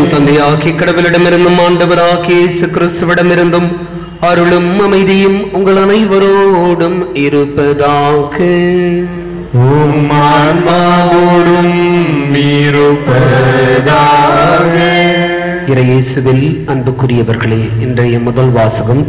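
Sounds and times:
man chanting into a microphone: 0.0 - 19.0.

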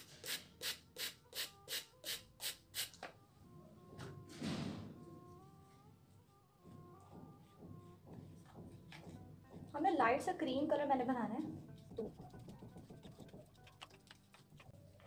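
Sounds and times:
spray bottle squirting water: 0.0 - 3.0, 11.8 - 14.7
soft background music: 0.0 - 15.0.

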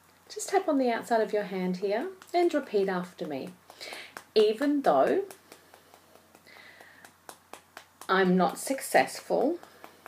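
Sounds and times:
fingertips tapping on hand: 1.6 - 10.0.

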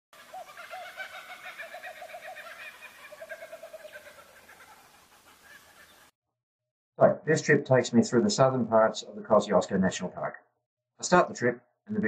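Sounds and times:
bird chirping: 0.2 - 6.1.

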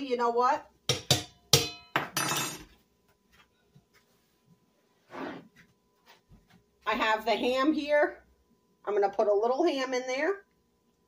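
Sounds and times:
kitchenware clinking: 0.9 - 2.8
soft scrape or rustle: 4.0 - 6.2.

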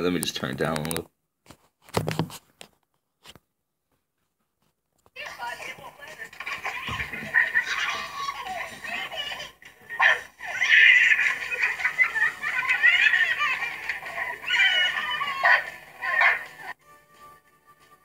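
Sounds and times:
background music: 5.2 - 18.0
high-pitched giggling: 6.5 - 16.8.

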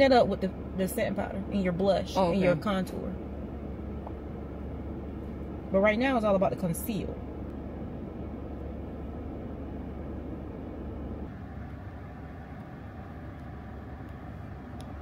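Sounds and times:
low hum inside car cabin: 0.0 - 15.0.

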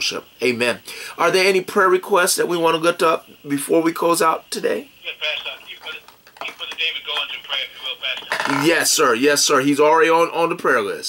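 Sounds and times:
man talking over telephone: 0.0 - 11.0.

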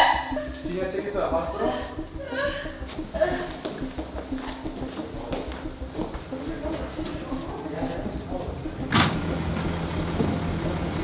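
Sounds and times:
vehicle engine idling: 8.5 - 11.0.

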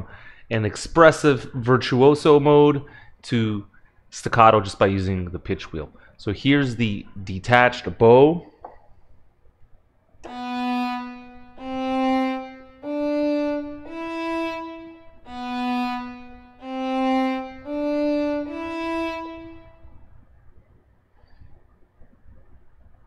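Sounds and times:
violin bowed detached notes: 10.2 - 20.1.

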